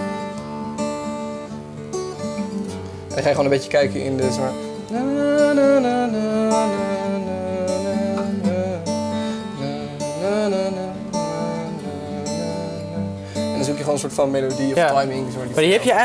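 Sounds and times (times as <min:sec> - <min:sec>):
acoustic guitar strumming chords: 0:00.0 - 0:16.0
person singing wordless melody: 0:04.5 - 0:13.8.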